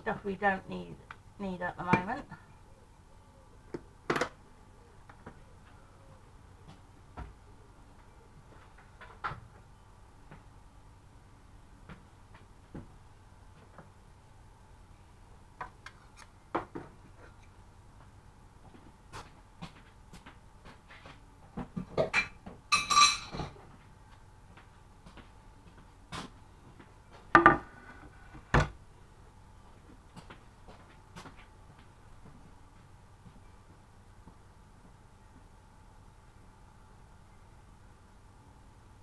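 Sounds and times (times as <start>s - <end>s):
heavy knocks on worktop: 27.4s - 27.6s.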